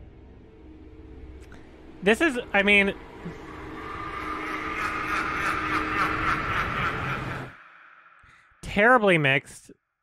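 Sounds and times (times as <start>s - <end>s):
soundtrack swell with low tone: 0.0s - 8.6s.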